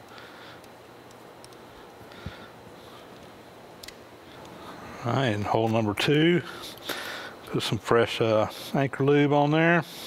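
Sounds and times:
workshop room tone: 0.0s - 10.0s.

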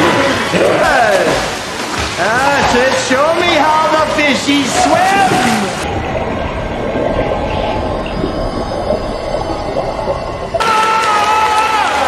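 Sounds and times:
underwater churning and bubbling: 0.0s - 11.3s
water splashing: 0.0s - 12.0s
held tone: 6.9s - 11.0s.

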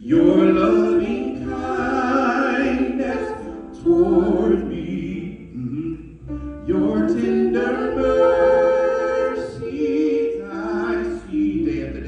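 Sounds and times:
amplified person singing: 0.0s - 12.0s.

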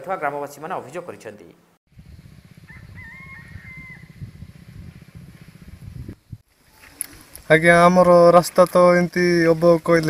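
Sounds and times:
steady low rumble: 1.9s - 6.4s
rooster crowing: 2.6s - 4.3s.

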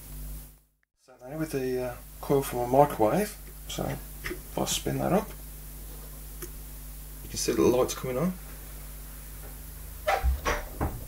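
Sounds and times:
dull thump: 10.1s - 11.0s.

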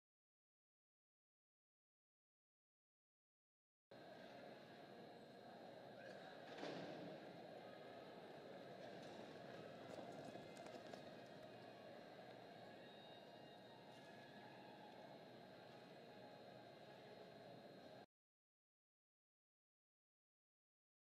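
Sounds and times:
murmur of distant voices: 3.9s - 18.1s.

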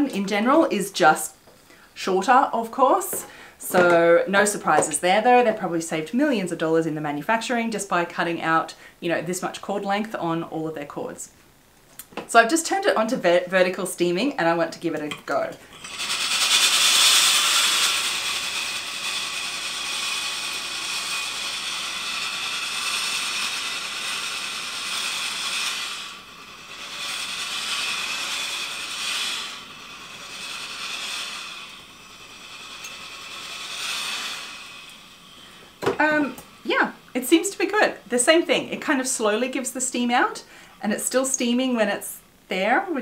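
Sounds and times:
person speaking: 2.0s - 11.2s, 35.8s - 40.1s
puffs of steam: 3.1s - 3.7s, 8.7s - 9.0s, 15.6s - 38.3s, 40.4s - 40.8s
steam iron hissing: 15.6s - 40.7s.

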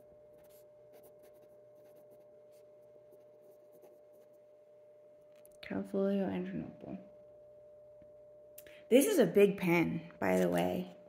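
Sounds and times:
faint steady hum: 0.0s - 11.0s
pen scratching on paper: 0.3s - 4.4s.

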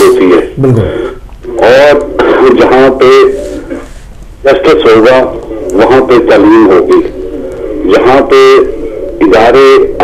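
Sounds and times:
man talking: 0.0s - 3.5s.

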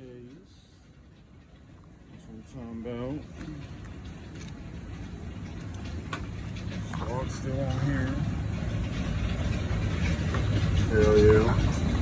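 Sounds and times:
low machinery rumble: 0.0s - 12.0s.

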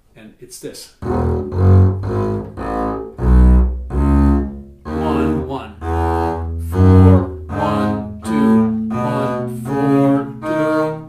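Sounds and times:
double bass bowed scale: 1.0s - 11.0s.

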